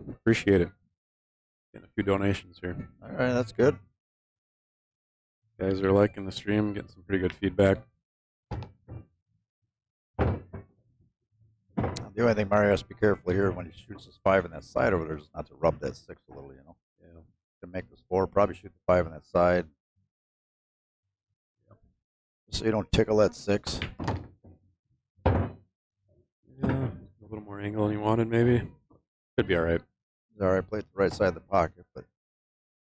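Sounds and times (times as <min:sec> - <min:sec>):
pool ball knocking into pocket: 0:10.2 - 0:10.7, 0:25.3 - 0:25.6.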